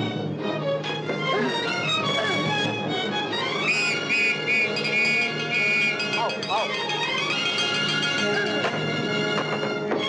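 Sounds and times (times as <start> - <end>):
music score: 0.0 - 10.0
high-pitched whistle notes: 3.6 - 6.7.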